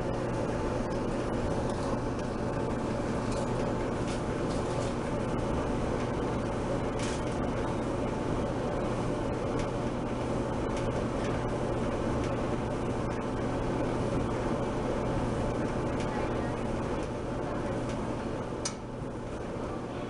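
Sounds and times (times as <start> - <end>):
gas clothes dryer running: 0.0 - 20.0.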